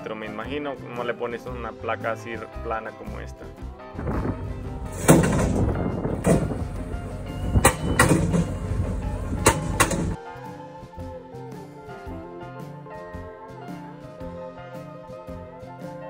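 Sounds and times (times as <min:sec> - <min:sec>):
background music: 0:00.0 - 0:16.0
machine running noise: 0:04.1 - 0:10.2
post driver hammering steel post: 0:04.9 - 0:10.2.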